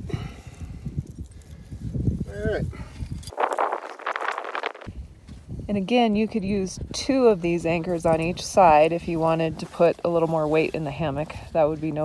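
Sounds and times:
hands scraping dry sand: 3.1 - 4.9, 7.2 - 12.0.

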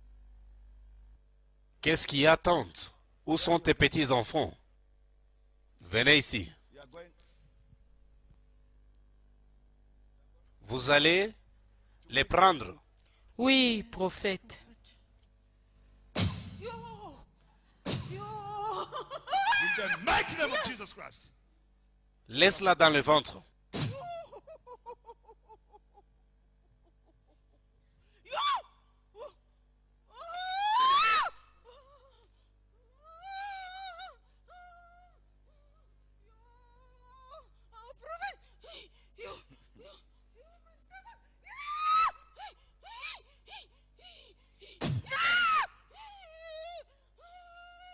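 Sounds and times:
woman screaming: 18.1 - 20.7, 23.9 - 24.6, 28.3 - 29.4, 30.1 - 32.1, 33.1 - 35.2, 36.3 - 43.7, 45.0 - 47.9
woman gasping cries: 36.4 - 47.9.

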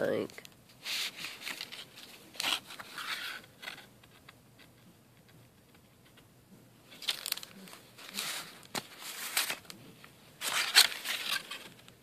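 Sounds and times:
paper rustling and scraping: 0.8 - 4.3, 6.9 - 11.9.

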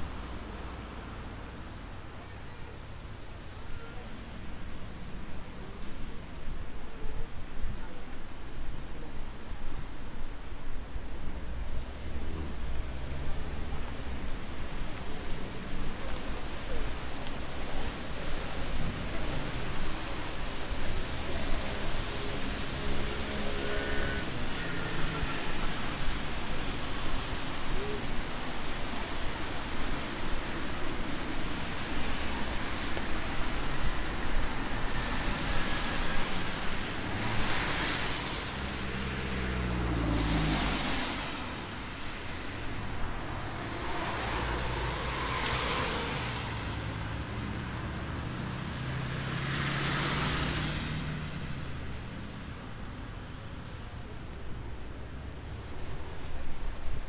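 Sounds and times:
traffic noise on wet road: 0.0 - 57.0
cars passing with tyre hiss: 8.8 - 57.0.

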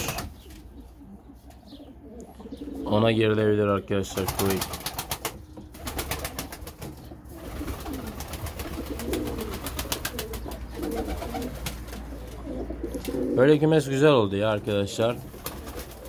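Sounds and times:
wings flapping: 0.0 - 0.6, 4.0 - 13.4, 15.2 - 16.0
pigeons cooing: 0.0 - 16.0.

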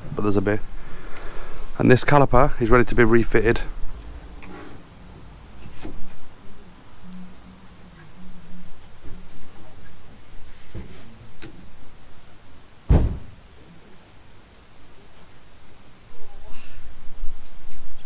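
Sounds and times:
loud thud: 12.9 - 13.4.

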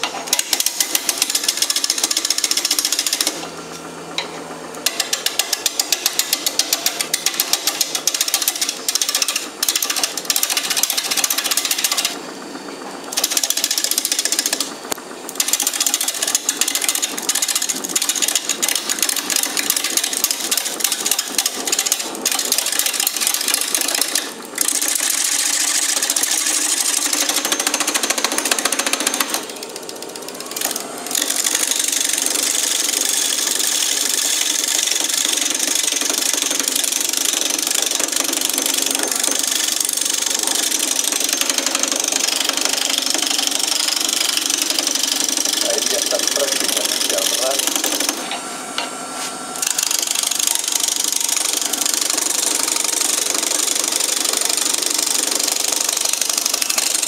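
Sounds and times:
lathe tool scraping wood: 29.3 - 57.0.

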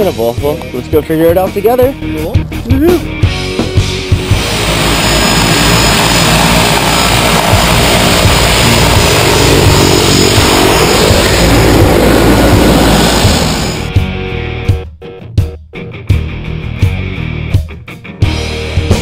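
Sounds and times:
rock music: 0.0 - 19.0
propeller aircraft noise: 2.6 - 14.0.

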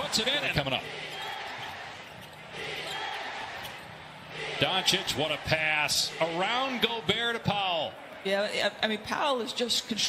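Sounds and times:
arena background noise: 0.0 - 10.0.

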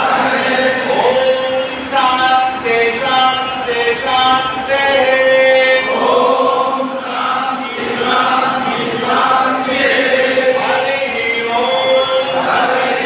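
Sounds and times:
group chanting in unison: 0.0 - 2.5, 3.1 - 13.0.

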